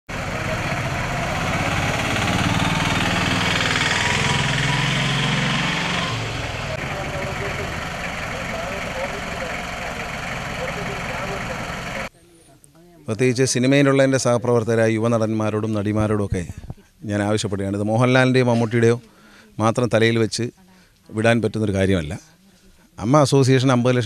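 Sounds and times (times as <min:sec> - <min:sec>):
car engine idling: 0:00.0 - 0:12.1
people talking: 0:03.1 - 0:24.0.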